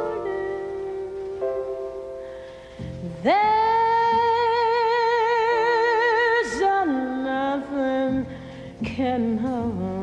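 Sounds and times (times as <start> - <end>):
woman singing wordless jazz ballad: 0.0 - 10.0.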